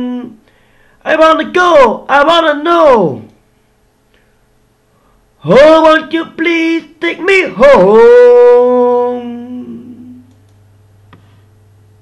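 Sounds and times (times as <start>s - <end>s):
faint low room hum: 0.0s - 12.0s
man singing a long note: 6.6s - 10.3s.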